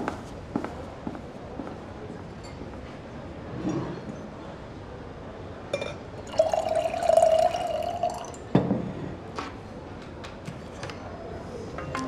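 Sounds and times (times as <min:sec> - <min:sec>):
glass clink: 0:05.7 - 0:08.8
wine pouring into a glass: 0:06.2 - 0:08.5.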